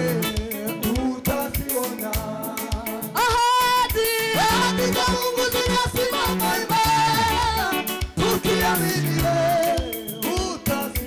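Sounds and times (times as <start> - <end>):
band accompaniment with beat: 0.0 - 11.0
woman singing lead vocal: 0.0 - 11.0
choir singing: 4.0 - 10.0.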